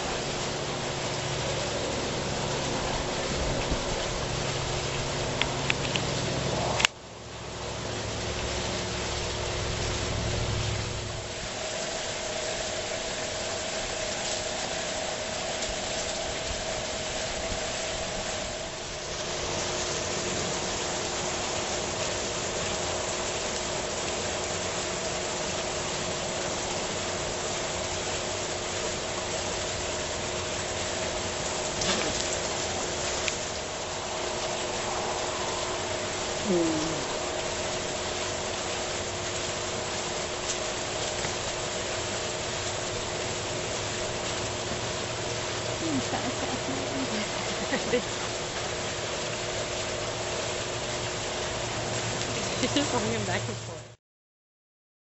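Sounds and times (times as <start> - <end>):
steady mechanical hum: 0.0 - 53.9
constant hiss: 0.0 - 54.0
low rumble: 8.1 - 11.6, 32.4 - 38.7.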